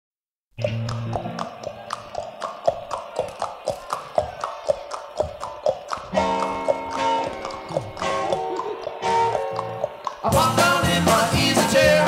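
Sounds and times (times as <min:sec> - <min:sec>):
percussive knocking beat: 0:00.6 - 0:12.0
live rock band: 0:10.3 - 0:12.0.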